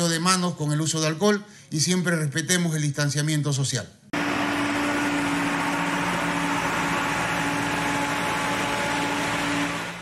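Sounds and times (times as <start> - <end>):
sprayer hissing: 4.2 - 10.0
tractor engine running: 4.2 - 10.0.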